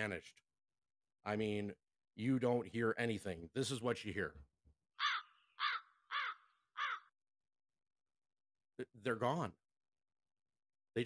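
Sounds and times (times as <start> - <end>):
crow cawing: 5.0 - 7.2.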